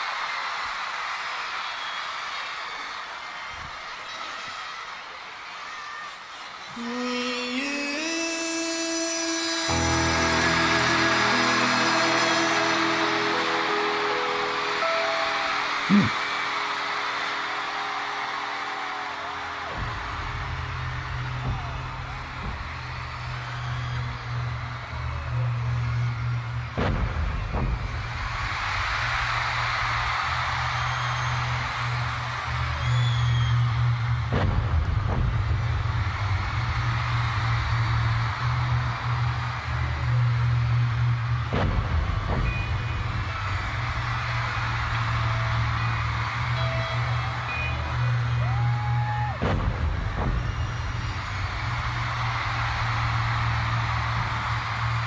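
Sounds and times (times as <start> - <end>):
crowd cheering and screaming: 0.0 - 55.0
band playing low drone: 9.7 - 29.5
booming drum hits: 19.7 - 23.6, 26.7 - 29.6, 34.2 - 36.9, 41.5 - 44.4, 49.4 - 52.6.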